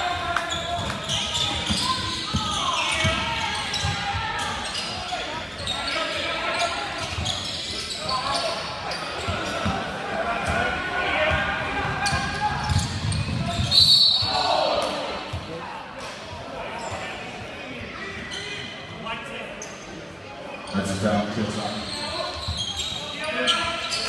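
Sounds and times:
voices of players and spectators: 0.0 - 24.0
referee's whistle: 13.5 - 14.5.

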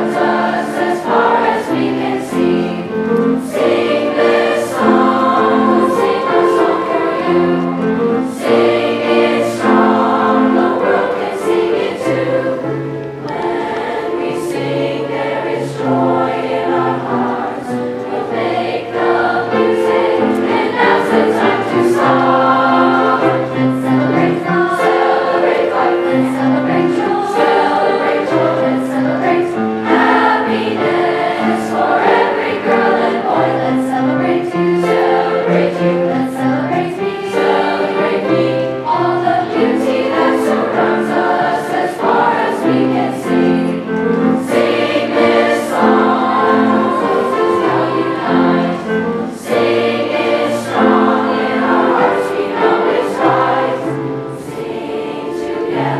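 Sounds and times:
choir singing: 0.0 - 55.9
piano accompaniment: 0.0 - 55.9.

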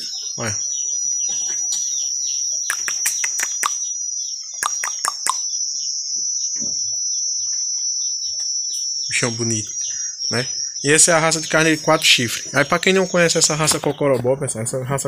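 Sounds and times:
crickets chirring: 0.0 - 15.0
quick sharp clicks: 2.7 - 3.8, 4.6 - 5.4.

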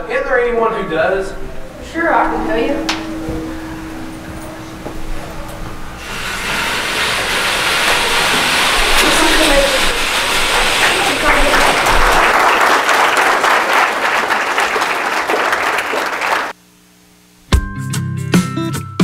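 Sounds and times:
audience applauding: 6.9 - 16.6.

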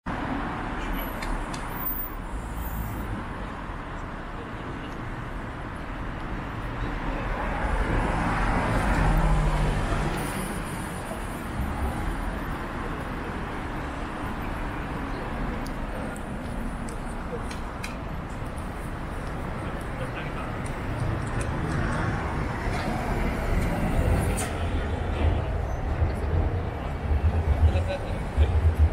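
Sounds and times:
city street traffic: 0.0 - 28.9.

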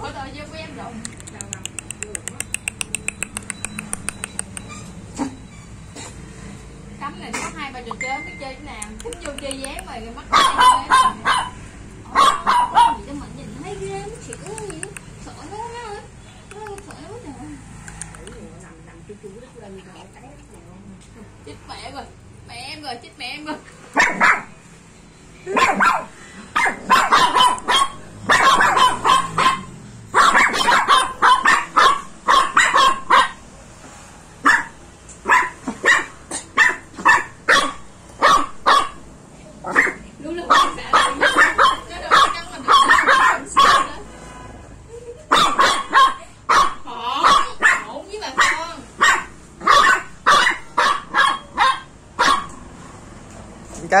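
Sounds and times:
small dog yapping: 10.3 - 13.1, 24.0 - 24.5, 25.5 - 33.4, 34.4 - 39.0, 39.6 - 43.9, 45.3 - 52.6.

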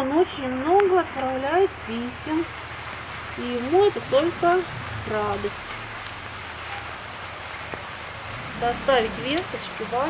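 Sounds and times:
light rain falling: 0.0 - 10.0.

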